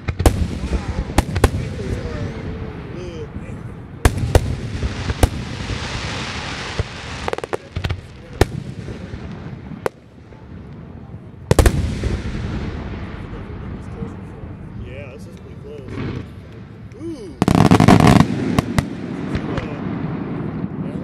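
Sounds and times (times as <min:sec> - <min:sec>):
fireworks bangs: 0:00.0 - 0:14.6, 0:15.8 - 0:21.0
fireworks crackling hiss: 0:04.0 - 0:10.9, 0:15.8 - 0:21.0.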